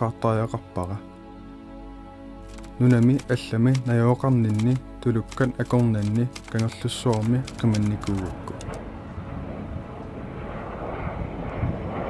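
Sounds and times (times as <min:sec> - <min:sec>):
aircraft engine drone: 0:02.5 - 0:12.0.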